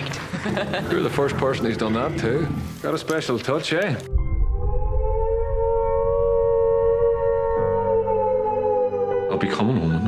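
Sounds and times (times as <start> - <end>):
deep low rumble: 4.1 - 7.6
air-raid siren wailing: 4.4 - 10.0.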